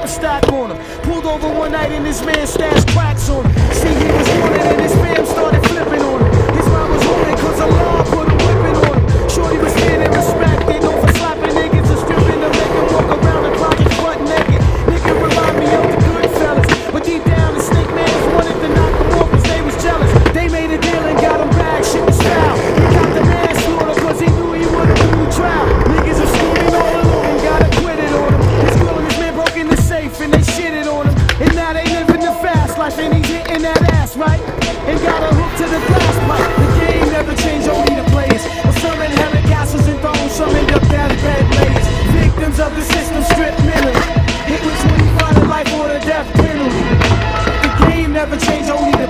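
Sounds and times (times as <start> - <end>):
hip-hop music: 0.0 - 49.0
skateboard clacks and knocks: 0.0 - 49.0
skateboard wheels on rough pavement: 0.0 - 49.0.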